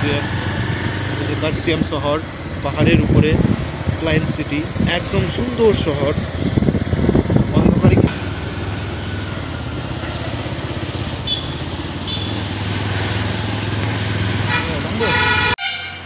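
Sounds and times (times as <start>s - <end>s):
motorcycle engine running: 0.0s - 15.5s
vehicle horn: 11.2s - 12.4s, 14.4s - 16.0s.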